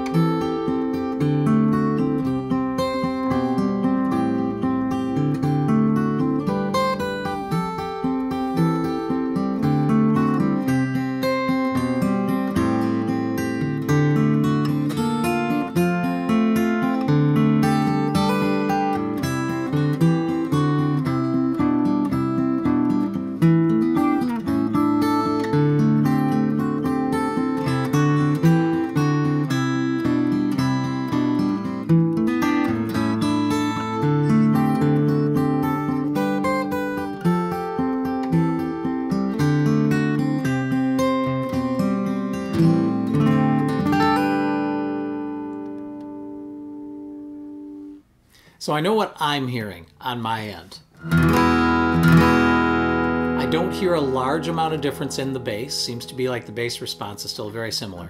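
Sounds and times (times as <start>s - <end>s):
acoustic guitar picked and strummed: 0.0s - 58.0s.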